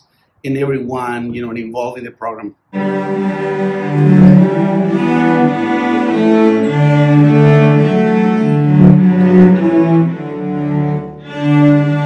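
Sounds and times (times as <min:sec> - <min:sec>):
cellos bowing held notes: 0:02.8 - 0:12.0.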